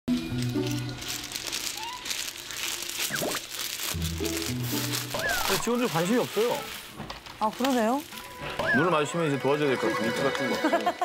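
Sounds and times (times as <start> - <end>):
paper or plastic crinkling: 0.1 - 11.0.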